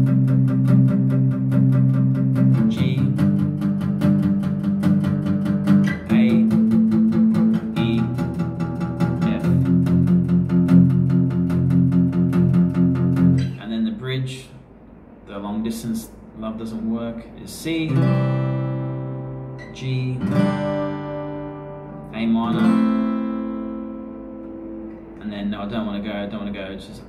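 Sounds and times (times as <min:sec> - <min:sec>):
acoustic guitar strummed chords: 0:00.0 - 0:13.6, 0:17.7 - 0:26.4.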